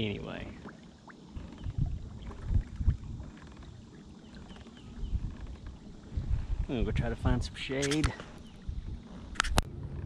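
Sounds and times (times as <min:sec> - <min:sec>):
low thumps and rumble: 0:01.4 - 0:03.8.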